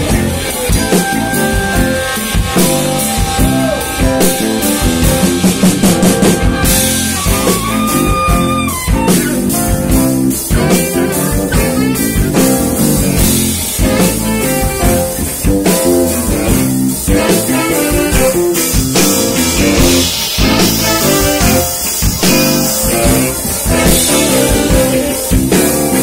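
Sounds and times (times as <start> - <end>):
funk band playing: 0.0 - 26.0.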